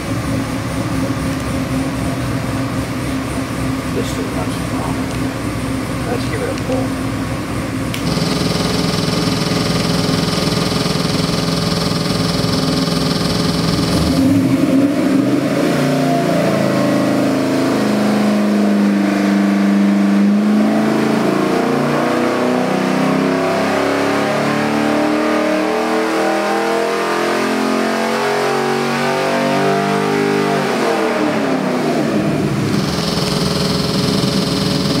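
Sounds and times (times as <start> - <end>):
engine revving on dyno: 0.0 - 35.0.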